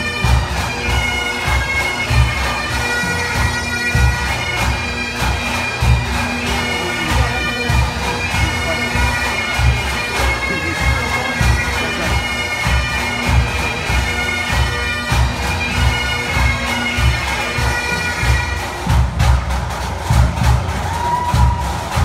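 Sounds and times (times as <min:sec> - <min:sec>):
bagpipe music: 0:00.0 - 0:22.0
steady drumbeat: 0:00.0 - 0:22.0.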